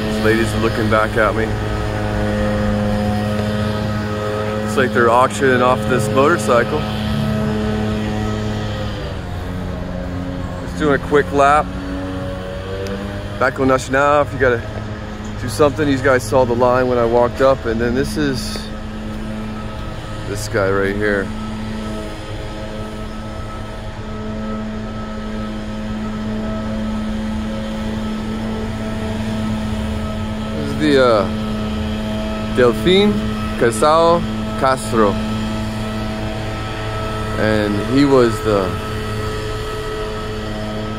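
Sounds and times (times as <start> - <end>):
steady mechanical drone: 0.0 - 40.9
vehicle engine humming: 0.0 - 40.9.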